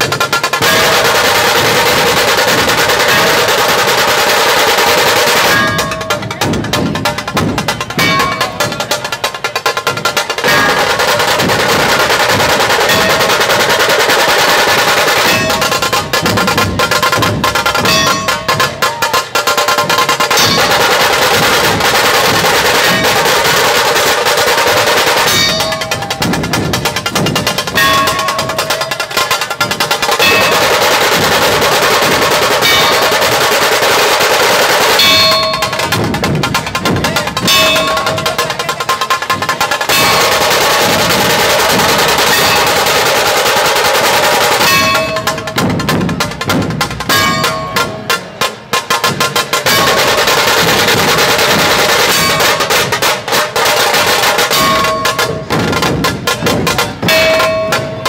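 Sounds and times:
barrel drums beaten: 0.0s - 58.0s
fast drum rolls: 0.0s - 58.0s.

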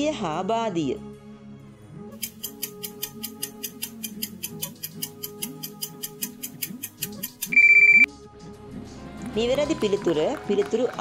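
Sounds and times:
soft background music: 0.0s - 11.0s
clock ticking quickly: 2.2s - 8.0s
electronic beep: 7.5s - 8.1s.

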